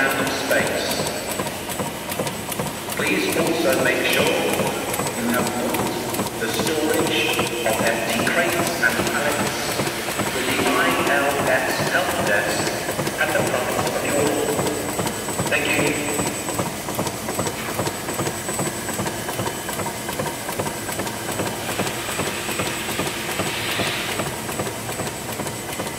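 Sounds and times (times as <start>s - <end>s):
people talking: 0.0s - 1.1s, 3.0s - 14.9s, 15.5s - 16.4s
machine clattering: 0.0s - 25.9s.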